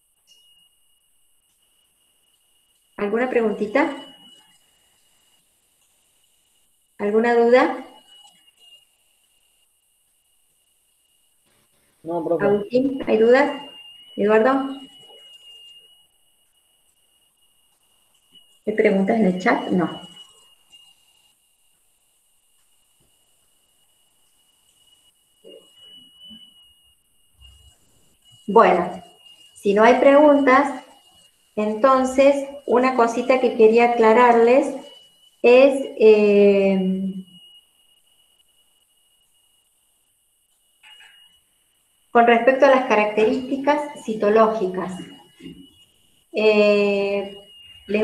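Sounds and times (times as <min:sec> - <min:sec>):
high-pitched electronic whine: 0:00.0 - 0:48.0
person speaking: 0:12.1 - 0:13.6, 0:42.7 - 0:45.0.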